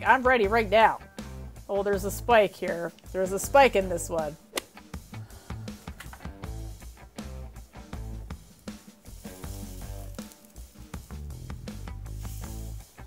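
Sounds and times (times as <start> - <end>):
heavy metal music: 3.2 - 13.0.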